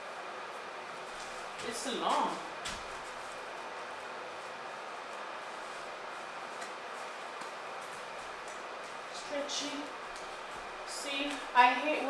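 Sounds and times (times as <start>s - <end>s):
oven running: 0.0s - 12.0s.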